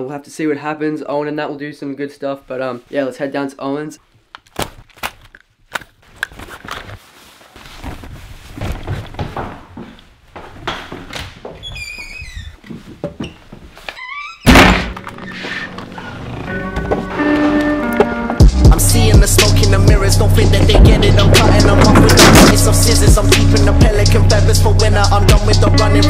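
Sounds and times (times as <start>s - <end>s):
music with heavy bass beat: 18.4s - 26.0s.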